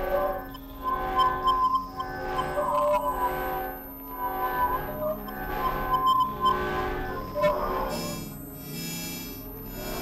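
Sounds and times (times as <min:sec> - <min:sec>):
glassy synthesizer drone: 0:00.0 - 0:10.0.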